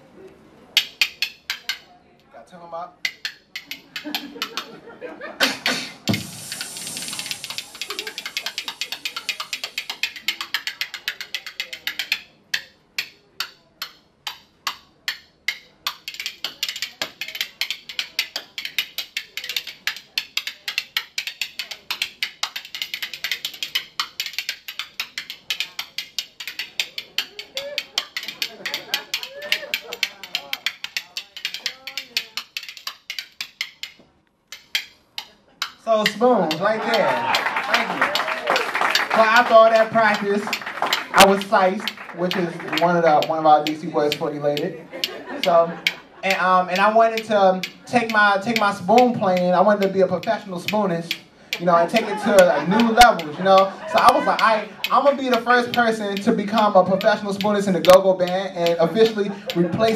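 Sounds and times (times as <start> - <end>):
metal spoons clicking: 3.0 - 4.7, 6.2 - 59.9.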